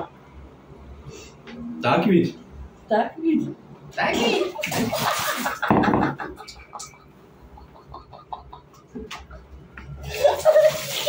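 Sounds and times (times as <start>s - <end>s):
water pouring and splashing: 4.4s - 5.7s, 10.0s - 11.0s.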